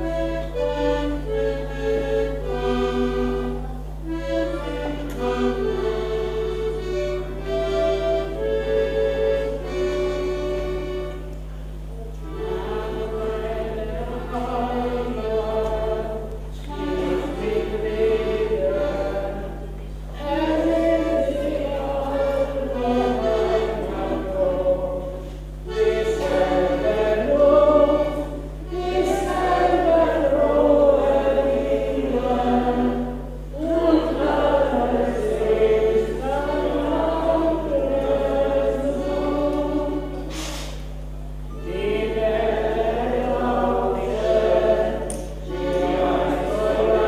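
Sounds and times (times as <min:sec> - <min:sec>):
button accordion: 0:00.0 - 0:47.0
steady low hum: 0:00.0 - 0:47.0.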